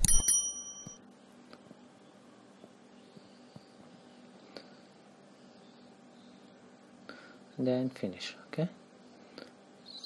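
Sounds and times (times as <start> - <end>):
high bell ding: 0.0 - 1.0.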